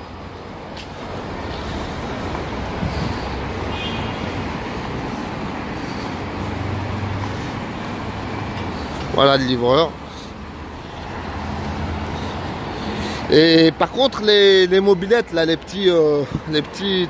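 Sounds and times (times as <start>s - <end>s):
road traffic rushing past: 0.0s - 17.0s.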